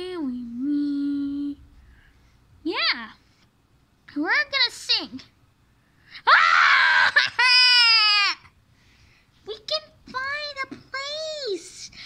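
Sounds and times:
child screaming: 6.2 - 8.5.

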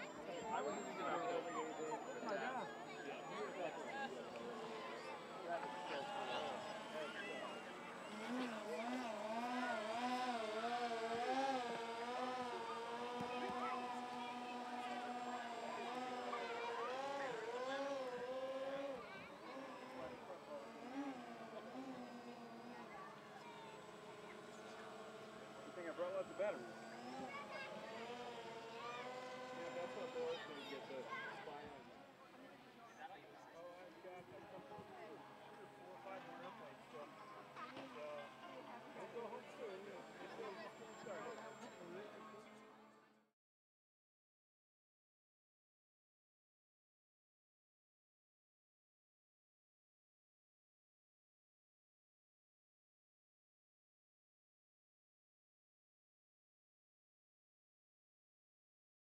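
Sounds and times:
model aircraft motor buzzing: 0.0 - 43.2
faint voices talking: 0.0 - 43.3.

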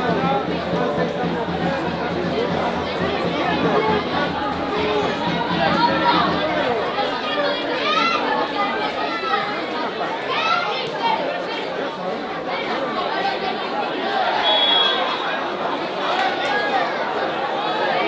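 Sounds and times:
voices chattering and calling out: 0.0 - 18.0
loud shouts: 12.7 - 18.0.

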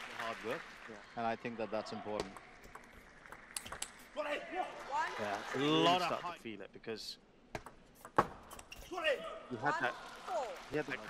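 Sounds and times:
table tennis ball clicks: 2.2 - 4.0.

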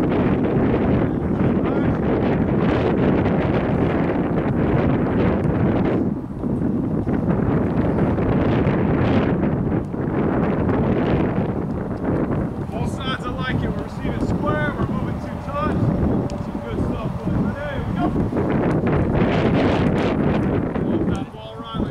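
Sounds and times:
wind buffeting microphone: 0.0 - 21.9.

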